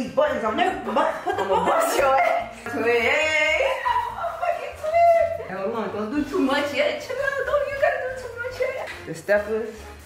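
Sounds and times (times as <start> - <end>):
people talking: 0.1 - 9.6
people laughing: 0.8 - 2.7, 3.5 - 5.2.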